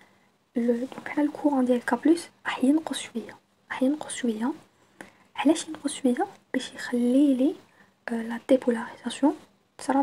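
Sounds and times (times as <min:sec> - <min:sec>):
person talking: 0:00.5 - 0:04.7, 0:05.4 - 0:10.0.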